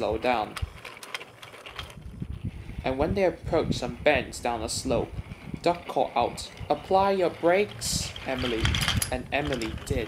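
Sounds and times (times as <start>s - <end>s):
wheels clicking on track joints: 0.0s - 10.0s
wooden toy train rolling: 0.0s - 10.0s.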